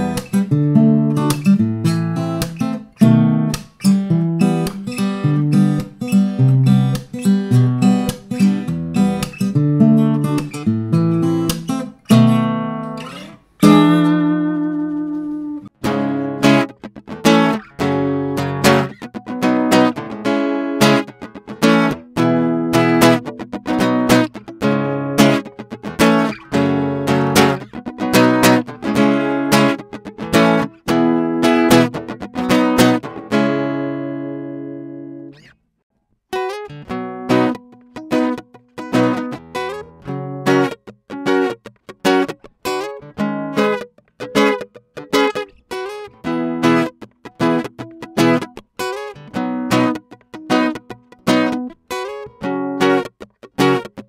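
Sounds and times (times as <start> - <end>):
acoustic guitar strumming chords: 0.0 - 35.4, 36.4 - 54.0.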